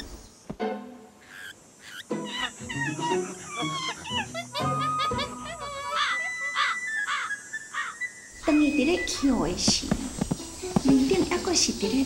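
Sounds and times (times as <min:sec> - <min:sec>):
monkeys chattering and squealing: 0:00.0 - 0:00.2, 0:01.2 - 0:12.0
soft background music: 0:08.4 - 0:12.0.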